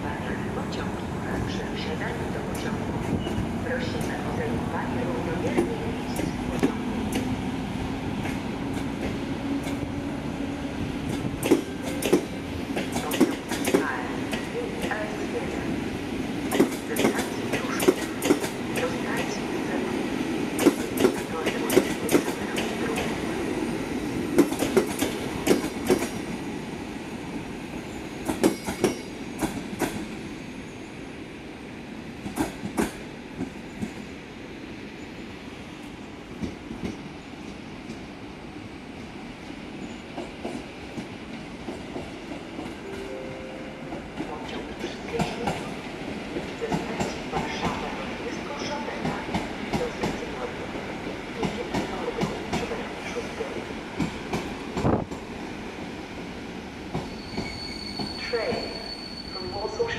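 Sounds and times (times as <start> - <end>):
train rumble: 0.0 - 27.6, 39.1 - 59.9
train wheels clicking over rail joints: 11.1 - 14.5, 16.5 - 18.9, 20.6 - 23.1, 24.4 - 26.2.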